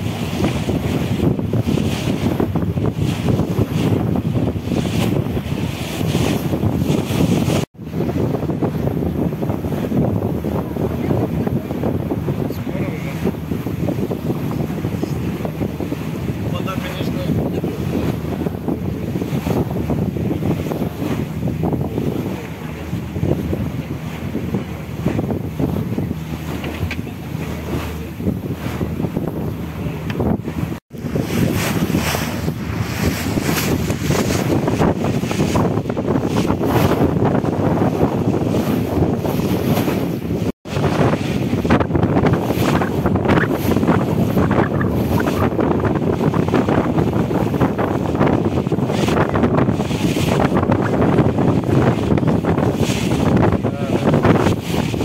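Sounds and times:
sea water washing around boat: 0.0s - 55.0s
wind buffeting microphone: 0.0s - 55.0s.

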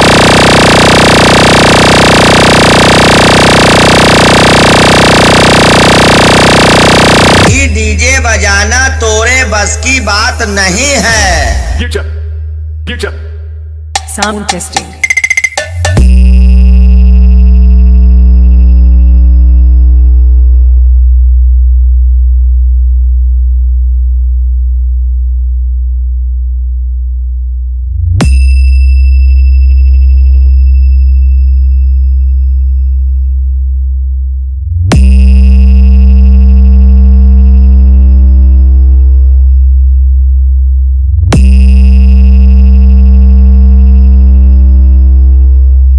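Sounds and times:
deep electronic bass note: 0.0s - 14.2s, 15.9s - 45.9s.

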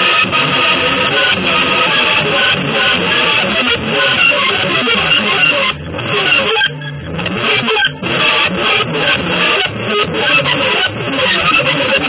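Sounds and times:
noisy free jazz electric guitar: 0.0s - 12.0s.

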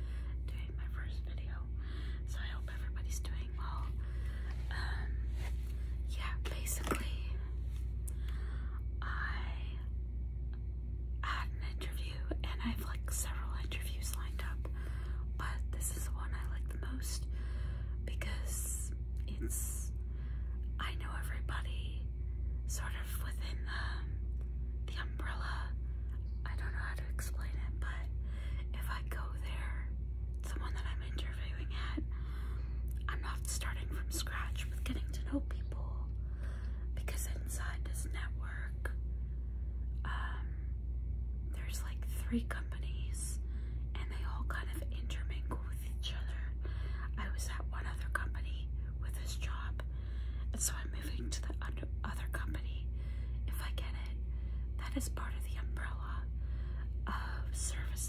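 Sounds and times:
steady low hum: 0.0s - 58.0s
woman whispering: 0.2s - 7.5s, 9.0s - 9.9s, 11.2s - 17.3s, 18.0s - 20.0s, 20.7s - 22.1s, 22.7s - 24.1s, 24.8s - 32.2s, 33.0s - 36.2s, 36.9s - 39.0s, 40.0s - 40.7s, 41.5s - 49.9s, 50.5s - 56.4s, 57.0s - 58.0s.

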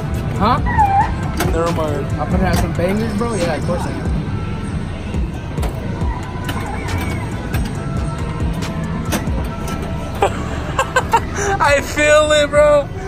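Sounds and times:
pinball machine music and effects: 0.0s - 11.4s.

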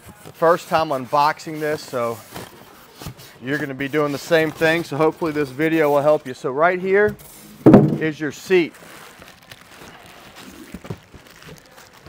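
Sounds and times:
plastic wrapping rustling: 0.1s - 12.0s.

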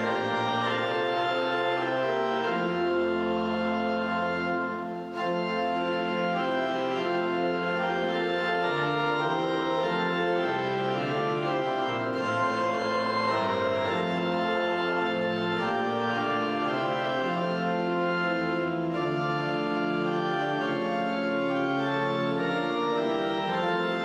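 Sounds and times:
organ playing held chords: 0.0s - 24.0s.

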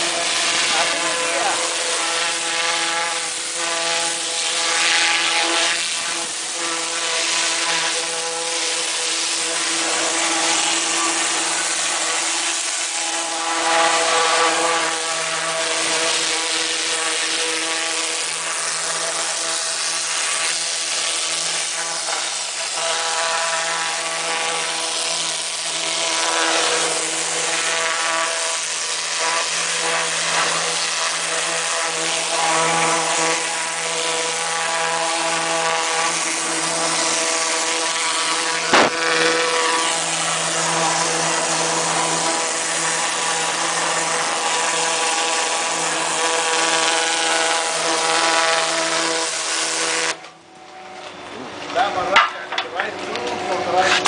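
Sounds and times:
pressure washer spray hissing: 0.0s - 50.2s
machine drone: 0.0s - 54.0s.

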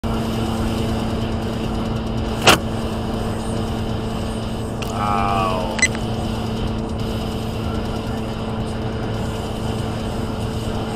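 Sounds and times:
car interior road noise: 0.0s - 10.9s.

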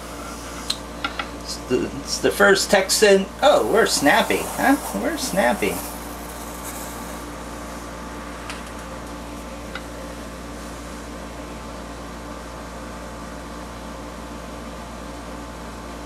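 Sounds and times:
mechanical room hum: 0.0s - 16.0s.

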